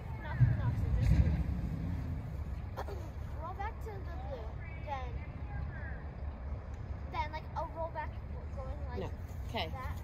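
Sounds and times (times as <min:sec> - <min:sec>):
steady low rumble: 0:00.0 - 0:07.1.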